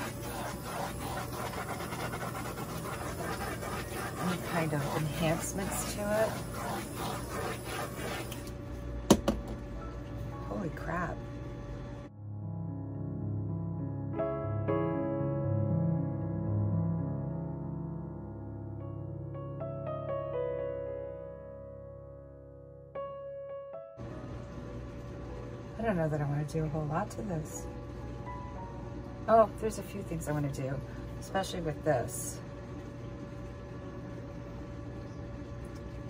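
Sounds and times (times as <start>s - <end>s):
low mechanical hum with hiss: 0.0s - 12.1s, 24.0s - 36.0s
woman speaking: 3.7s - 6.9s, 10.4s - 11.2s, 25.8s - 27.7s, 29.3s - 32.4s.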